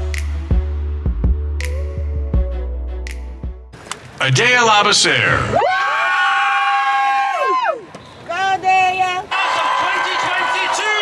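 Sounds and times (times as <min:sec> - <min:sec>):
person yelling a long cheer: 0:05.5 - 0:07.9, 0:09.3 - 0:11.0.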